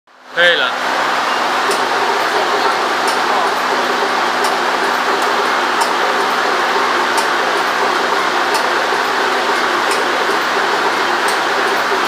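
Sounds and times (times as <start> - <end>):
wire stripping machine running: 0.8 - 12.0.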